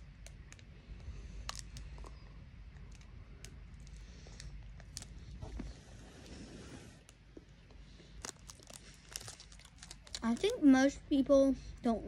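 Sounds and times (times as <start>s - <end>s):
foil wrapper handled: 8.2s - 10.7s.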